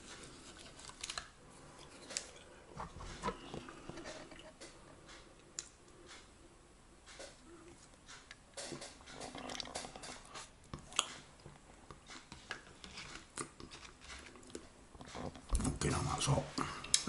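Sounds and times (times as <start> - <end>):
person chewing and swallowing: 7.1 - 15.5.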